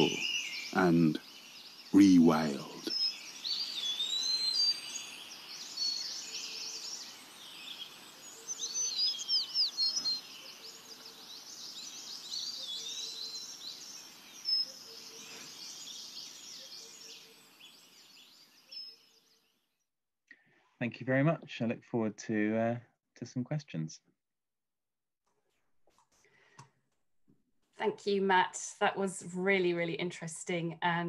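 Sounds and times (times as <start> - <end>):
songbirds chirping and whistling: 0.0 - 19.6.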